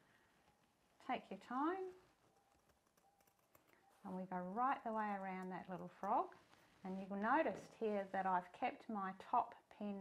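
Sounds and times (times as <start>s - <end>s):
scissors cutting fabric: 5.0s - 6.3s.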